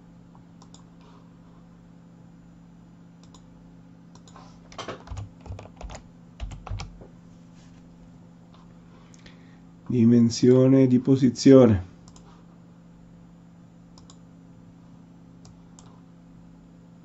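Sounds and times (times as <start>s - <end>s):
faint steady hum: 0.0s - 17.0s
computer keyboard typing: 4.2s - 7.0s.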